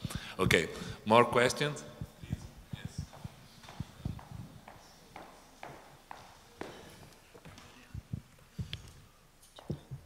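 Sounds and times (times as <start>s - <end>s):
muffled footsteps: 0.0s - 1.1s, 1.9s - 10.0s.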